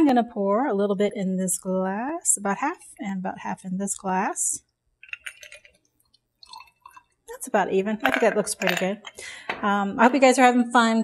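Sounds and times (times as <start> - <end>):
liquid trickling into glass: 5.1 - 7.3.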